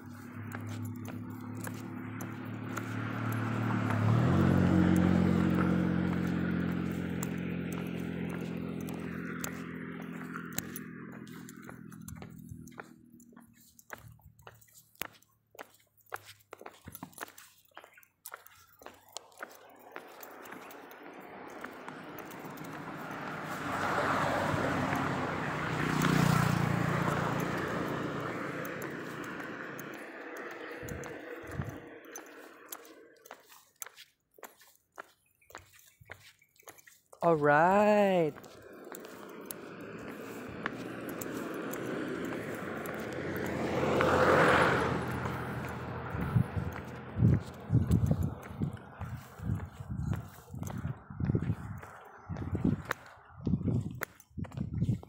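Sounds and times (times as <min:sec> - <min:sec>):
scattered clicks: 0:00.0 - 0:04.1, 0:04.9 - 0:23.6, 0:25.9 - 0:37.3
vehicle engine passing: 0:00.0 - 0:14.8, 0:18.3 - 0:33.9, 0:37.2 - 0:55.0.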